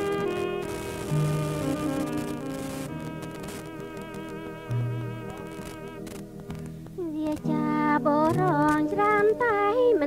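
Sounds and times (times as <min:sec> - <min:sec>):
band music with low bass: 0:00.0 - 0:07.0.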